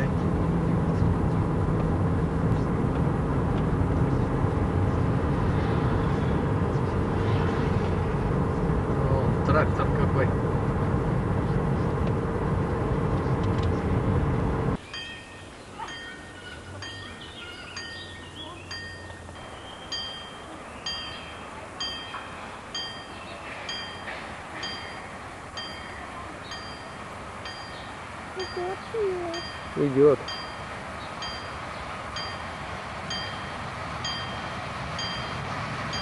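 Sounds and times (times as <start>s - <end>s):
car road and engine noise: 0.0s - 36.0s
level crossing warning bell: 14.8s - 36.0s.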